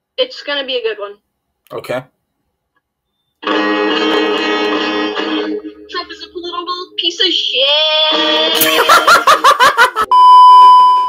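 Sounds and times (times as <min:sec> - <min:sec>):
burst of laughter: 0:08.6 - 0:10.1
censor bleep: 0:10.1 - 0:11.0.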